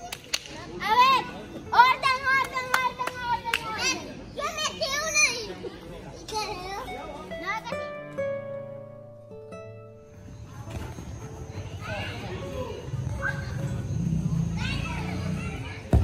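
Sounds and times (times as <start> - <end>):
children shouting and squealing: 0.8 - 7.9, 11.5 - 16.0.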